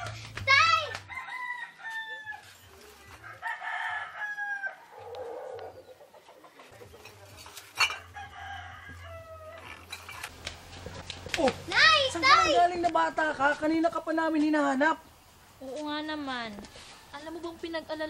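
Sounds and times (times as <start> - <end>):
roosters crowing: 1.1 - 2.6, 3.2 - 6.3, 7.8 - 10.3.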